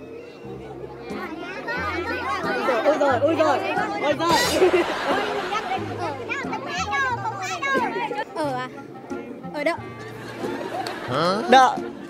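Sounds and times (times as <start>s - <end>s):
people talking: 0.0s - 8.7s, 11.0s - 11.9s
people laughing: 1.9s - 6.8s, 10.1s - 12.0s.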